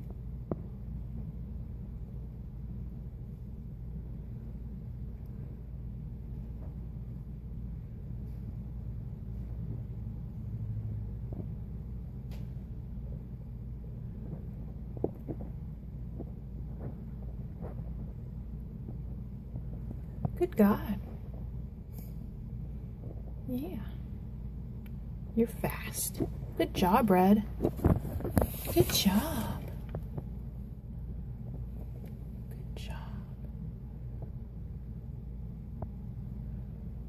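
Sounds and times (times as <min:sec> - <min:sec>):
steady low rumble: 0:00.0 - 0:37.0
person whispering: 0:32.6 - 0:33.5.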